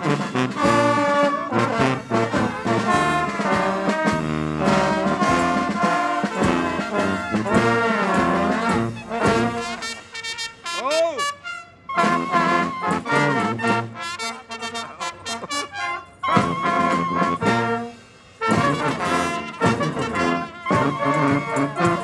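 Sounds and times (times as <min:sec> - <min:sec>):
brass band playing lively tune: 0:00.0 - 0:22.0
sliding horn note: 0:00.0 - 0:22.0.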